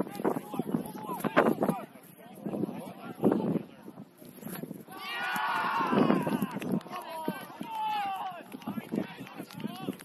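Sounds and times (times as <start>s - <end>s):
voices shouting: 4.9s - 8.5s.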